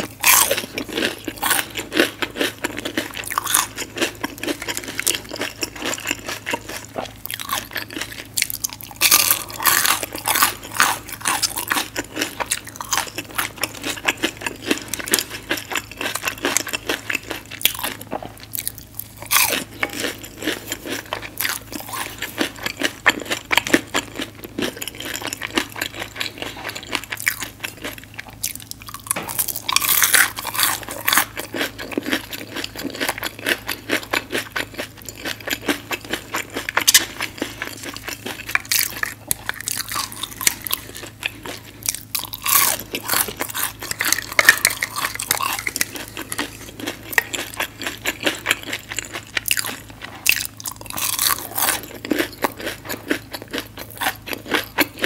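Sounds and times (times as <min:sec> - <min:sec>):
crunching and chewing fried food: 0:00.0 - 0:55.0.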